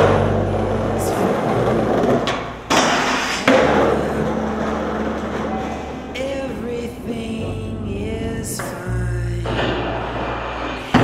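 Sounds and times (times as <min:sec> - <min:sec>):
skateboard impacts: 0:00.0 - 0:06.6, 0:09.4 - 0:11.0
skateboard wheels rolling on pavement: 0:00.0 - 0:06.6.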